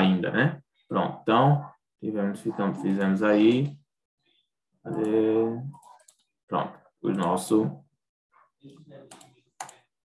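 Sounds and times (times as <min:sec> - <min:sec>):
computer clicks and taps: 0:09.1 - 0:09.9.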